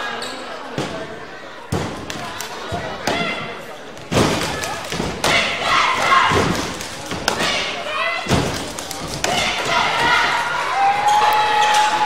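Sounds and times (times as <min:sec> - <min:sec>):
people shouting: 0:04.3 - 0:12.0.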